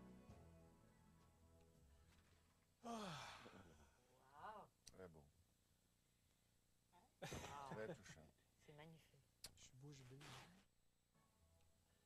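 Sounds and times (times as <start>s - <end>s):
man sighing: 2.8s - 4.0s.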